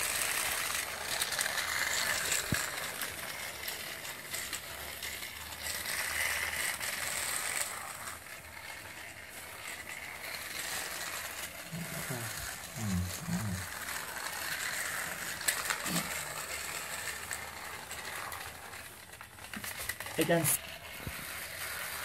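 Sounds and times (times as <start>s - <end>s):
toy train motor whirring: 0.0s - 22.0s.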